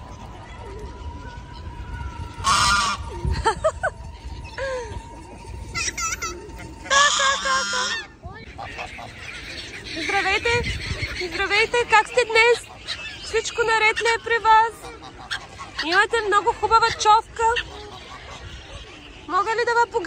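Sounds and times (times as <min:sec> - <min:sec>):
geese honking: 0:00.0 - 0:20.0.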